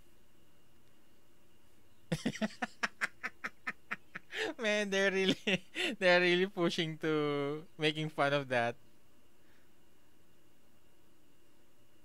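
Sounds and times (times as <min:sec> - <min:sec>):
man laughing breathily: 0:02.1 - 0:04.6, 0:05.3 - 0:06.0.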